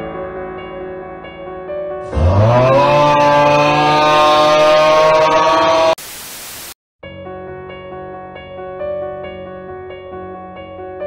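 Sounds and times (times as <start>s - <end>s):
droning tone sliding up: 2.1s - 6.0s
static hiss burst: 6.0s - 6.8s.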